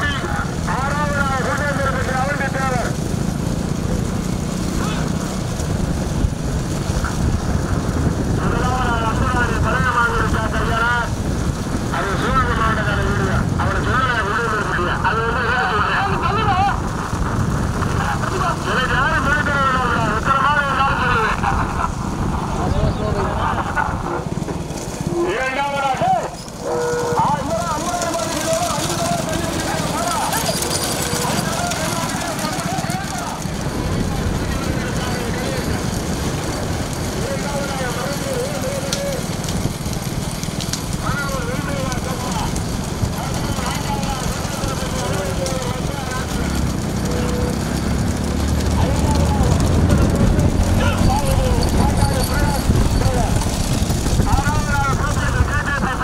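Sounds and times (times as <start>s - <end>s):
men shouting and calling: 0.0s - 3.1s, 8.4s - 56.0s
wind and road noise rumble: 0.0s - 56.0s.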